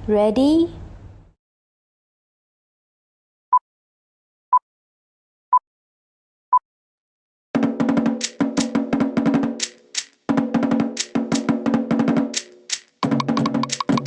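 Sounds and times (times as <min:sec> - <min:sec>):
deeper drum: 0:07.6 - 0:14.0
rapid wooden slit drumming: 0:07.6 - 0:14.0
electronic countdown beep: 0:13.0 - 0:14.0.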